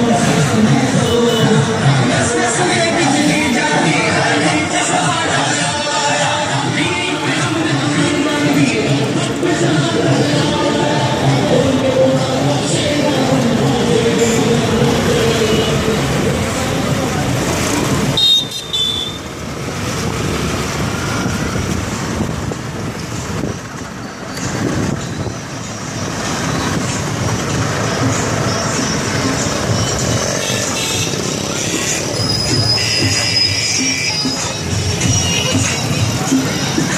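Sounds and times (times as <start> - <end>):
motorcycles and cars running: 0.0 - 36.9.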